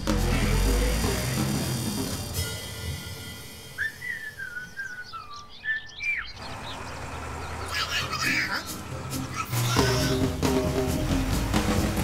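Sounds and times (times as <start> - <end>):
bird chirps: 3.0 - 8.8.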